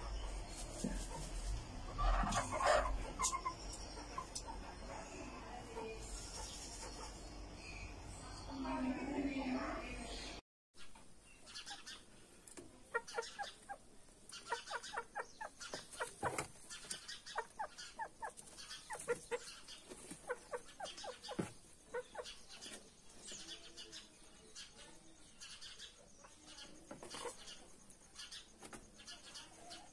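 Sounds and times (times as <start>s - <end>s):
chicken clucking: 0.0s - 7.6s, 11.5s - 29.9s.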